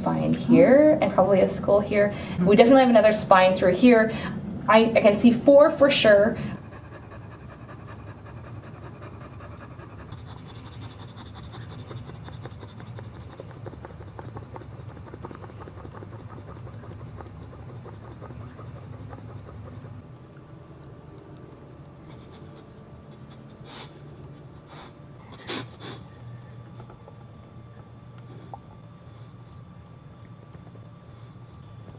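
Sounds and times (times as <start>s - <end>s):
dog panting rapidly: 6.5s - 20.0s.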